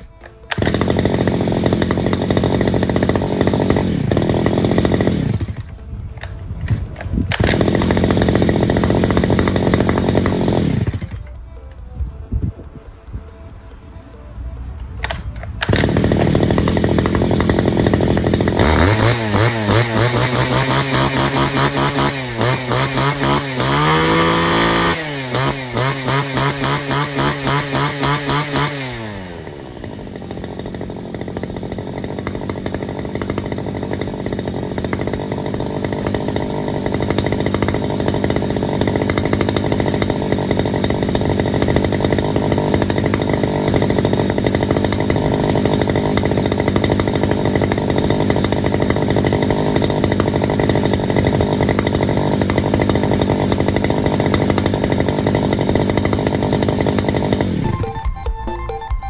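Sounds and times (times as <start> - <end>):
brush cutter engine revving and idling: 0.0 - 12.4, 13.0 - 58.5.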